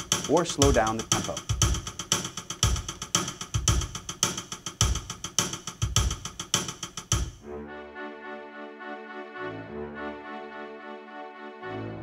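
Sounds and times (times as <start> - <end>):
drum-kit pattern: 0.0 - 7.4.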